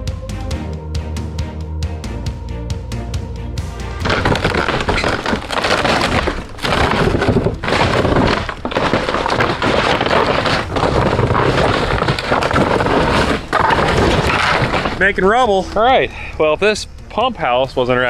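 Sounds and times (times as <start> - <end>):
wood cracking and splintering: 4.0 - 15.7.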